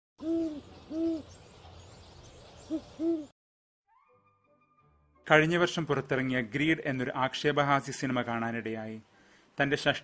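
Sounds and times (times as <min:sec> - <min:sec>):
owl hooting: 0:00.2 - 0:01.4, 0:02.7 - 0:03.3
faint background hiss: 0:05.3 - 0:10.0.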